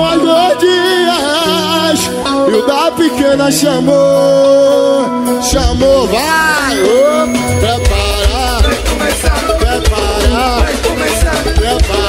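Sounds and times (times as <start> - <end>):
lead vocal with vibrato: 0.0 - 12.0
live band music: 0.0 - 12.0
steady bass note: 5.5 - 10.4.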